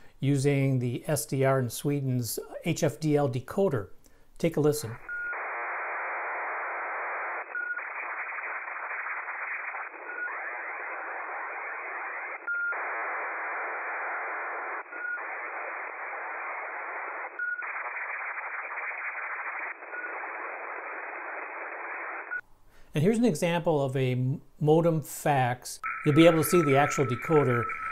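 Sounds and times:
hiss-like data signal: 5.1s - 22.4s, 25.8s - 27.9s
brief tone: 25.8s - 27.9s.

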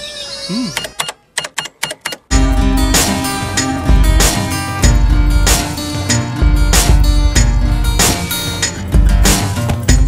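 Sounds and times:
sharp clicks: 0.8s - 2.3s.

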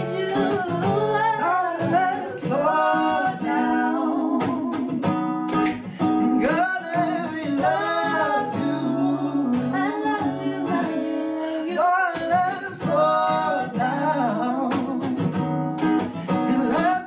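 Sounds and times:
man and woman singing: 0.0s - 5.2s, 5.8s - 17.0s
acoustic guitar: 0.0s - 17.0s.

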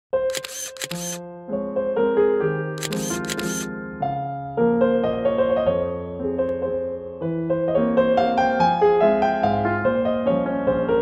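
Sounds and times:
camera shutter clicks: 0.3s - 1.2s, 2.8s - 3.7s.

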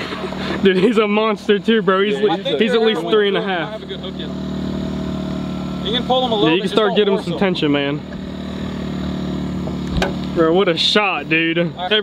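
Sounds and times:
generator engine humming: 0.0s - 12.0s.

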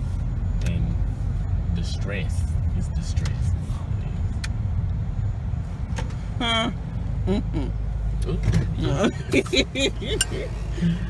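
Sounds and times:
car cabin rumble: 0.0s - 11.0s
woman laughing: 6.5s - 7.8s, 8.8s - 10.9s.

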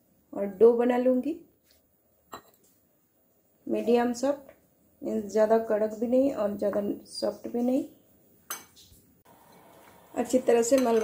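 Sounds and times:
glass bowl clinking: 10.5s - 11.0s.

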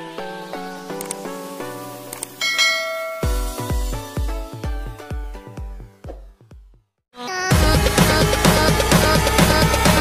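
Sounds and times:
notification bell chime: 2.4s - 3.7s
electronic dance music: 7.5s - 10.0s.

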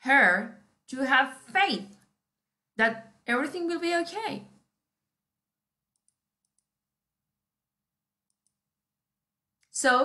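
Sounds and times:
computer mouse clicking: 5.9s - 6.8s, 8.2s - 8.7s.

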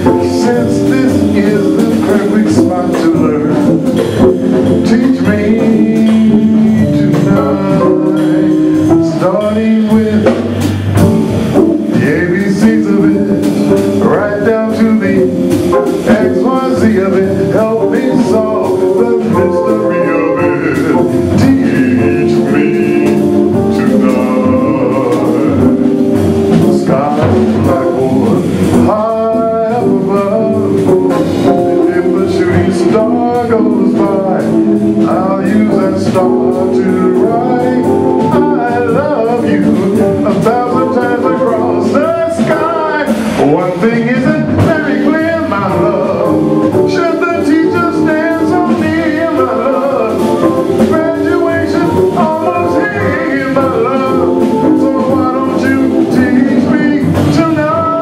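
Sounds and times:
drums: 0.0s - 58.0s
man singing: 0.0s - 58.0s.

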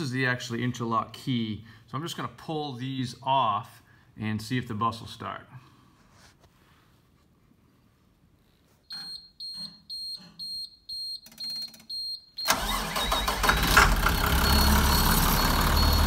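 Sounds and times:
bus engine starting and running: 12.4s - 16.0s
warning buzzer beeping: 14.1s - 16.0s.

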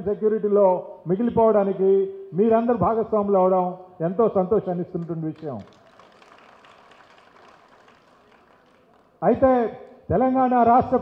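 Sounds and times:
faint hall background noise: 0.0s - 11.0s.

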